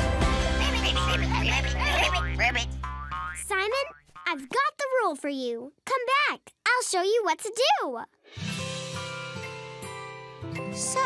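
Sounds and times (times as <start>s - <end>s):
bending cartoon voice sounds: 1.7s - 4.9s
children's song backing music: 10.5s - 11.0s.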